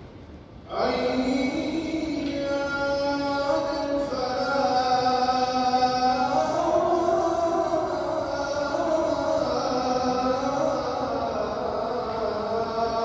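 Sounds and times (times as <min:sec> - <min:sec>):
man chanting over loudspeakers: 0:00.6 - 0:13.0.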